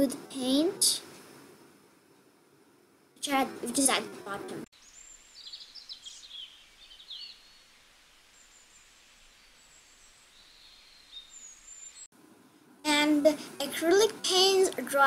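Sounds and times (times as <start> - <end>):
background hiss: 0.0 - 15.0
bird chirps: 4.8 - 7.8, 9.5 - 12.1.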